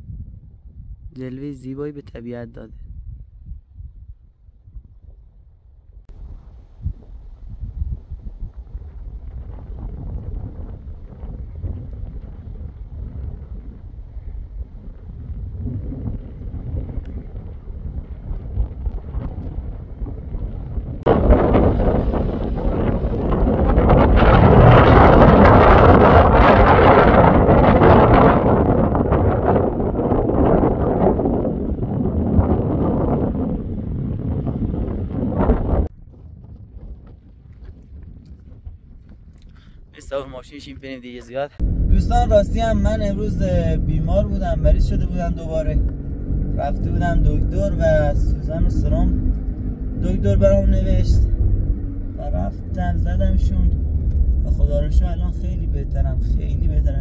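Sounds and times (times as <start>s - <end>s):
wind buffeting microphone: 0.0s - 1.2s, 2.0s - 57.0s.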